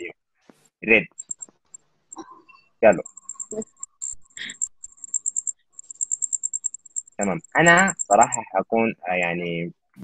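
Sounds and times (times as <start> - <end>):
high-pitched rhythmic chirping: 1.1 - 8.6.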